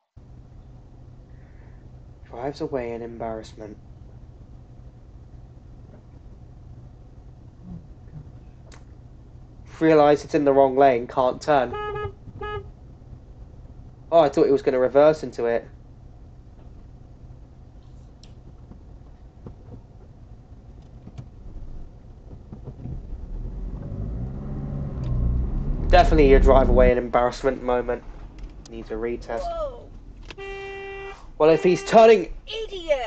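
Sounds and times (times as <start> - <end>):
car engine and road rumble: 0.0 - 33.0
faint low hum: 0.2 - 33.0.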